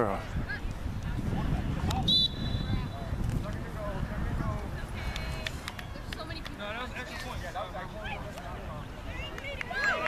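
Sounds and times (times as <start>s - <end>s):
children and people talking: 0.1s - 10.0s.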